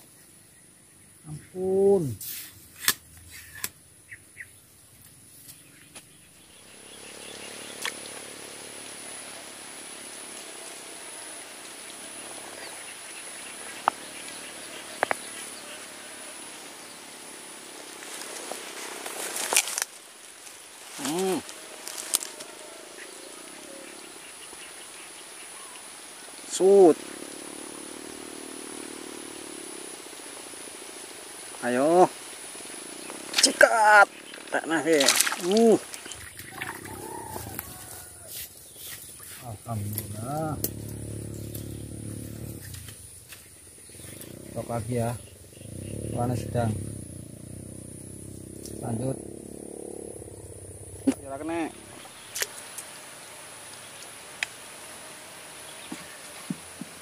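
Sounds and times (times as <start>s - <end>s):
hummed murmurs: 39.5s - 42.9s.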